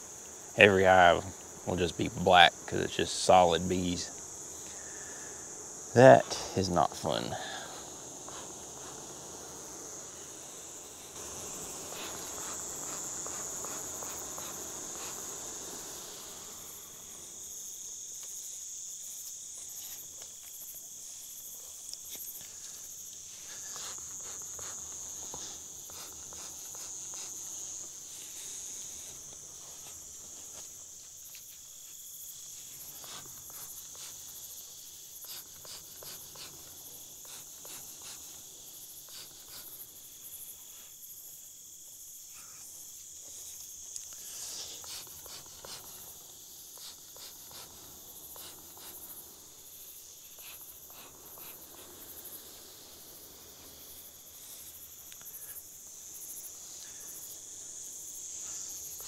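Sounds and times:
night insects chirping: 0.0s - 59.0s.

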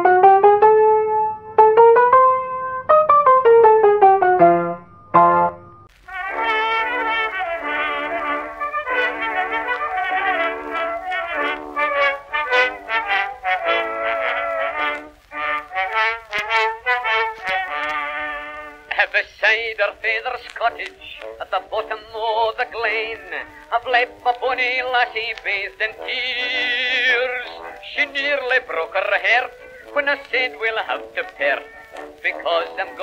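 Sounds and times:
keyboard jingle: 1.6s - 5.9s
low hum: 4.5s - 6.0s
orchestral music from cylinder record: 5.0s - 33.0s
person singing: 6.1s - 33.0s.

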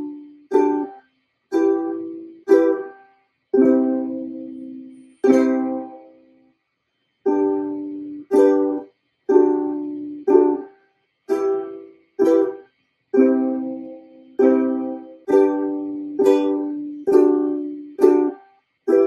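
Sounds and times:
ukulele strummed slowly: 0.0s - 6.5s, 7.2s - 19.0s.

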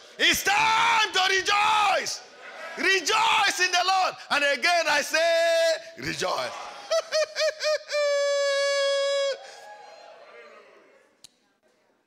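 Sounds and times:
man laughing in falsetto: 6.8s - 9.5s.

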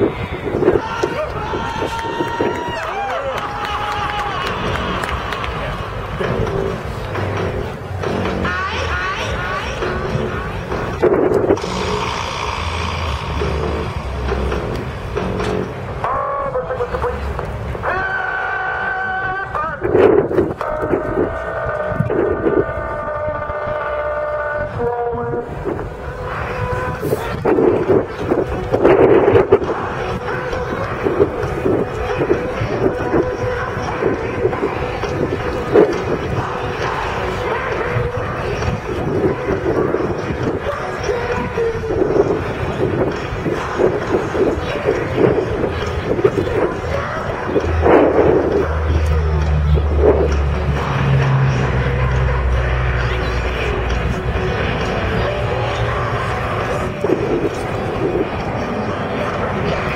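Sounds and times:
wind noise on microphone: 0.0s - 59.9s
deep propeller drone: 4.2s - 17.9s, 20.1s - 59.9s
distant turboprop aircraft droning: 4.3s - 17.9s, 25.4s - 59.9s.

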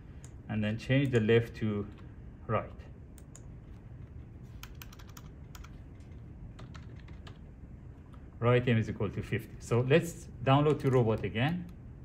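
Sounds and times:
low steady hum: 0.0s - 12.0s
computer keyboard typing: 3.2s - 7.4s.

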